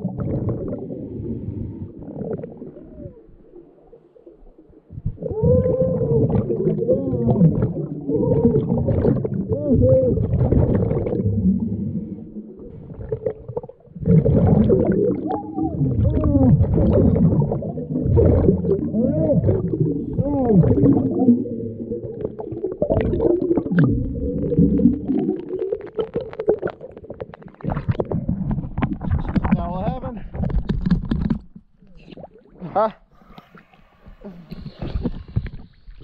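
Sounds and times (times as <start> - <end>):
underwater breathing bubbles: 0.0 - 29.6, 32.0 - 36.0
low underwater rumble: 0.0 - 32.6.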